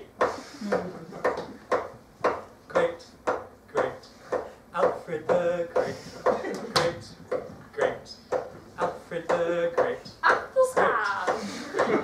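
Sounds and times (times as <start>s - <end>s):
rhythmic clanging beat: 0.0s - 12.0s.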